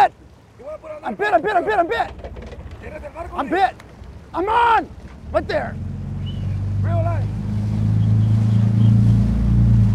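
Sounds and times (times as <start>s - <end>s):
boat engine humming: 0.0s - 9.9s.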